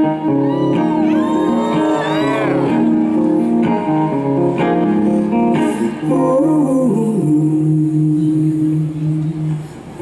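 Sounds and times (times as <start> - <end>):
acoustic guitar strumming: 0.0 - 6.8
man singing: 5.5 - 10.0.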